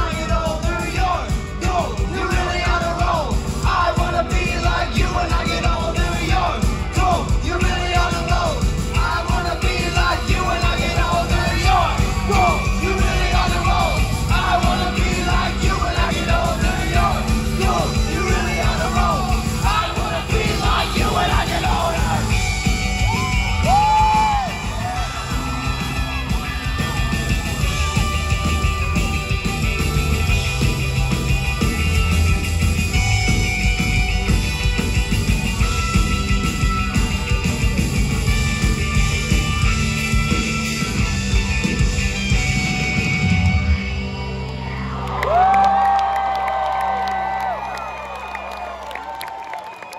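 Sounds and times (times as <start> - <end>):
rock band playing live: 0.0 - 46.0
crowd cheering and whooping: 9.8 - 31.6, 42.9 - 49.9
scattered clapping: 45.0 - 49.9.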